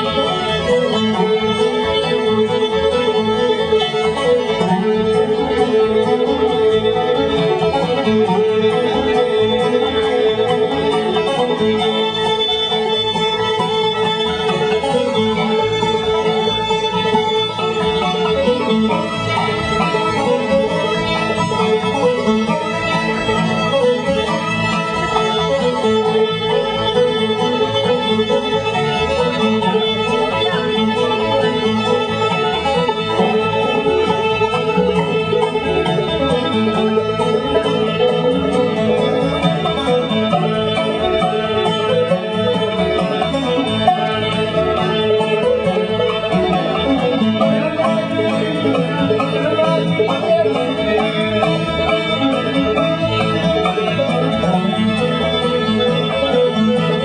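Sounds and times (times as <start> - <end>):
banjo: 0.0 - 57.0
fiddle: 0.0 - 57.0
guitar: 0.0 - 57.0.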